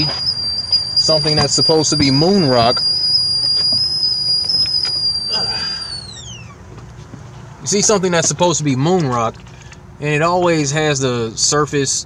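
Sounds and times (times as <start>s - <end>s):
whistling kettle: 0.0s - 6.6s.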